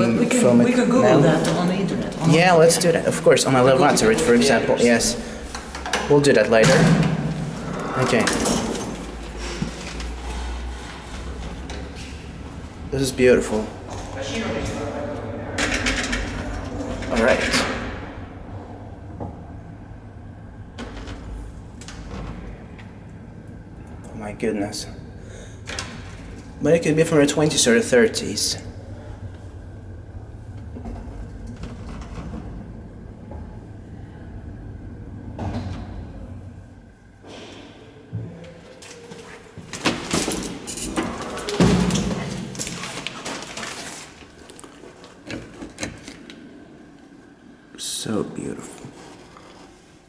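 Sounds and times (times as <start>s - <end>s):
elevator car low rumble: 7.3s - 37.2s.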